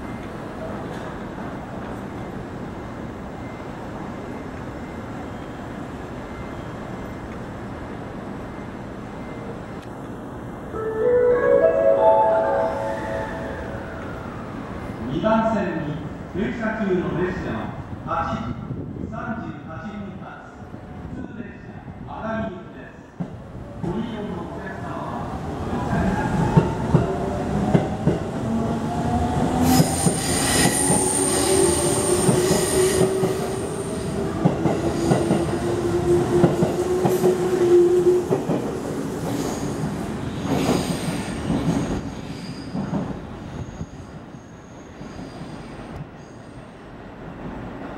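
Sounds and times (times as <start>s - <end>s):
thin high squeal: 42.1s - 42.8s.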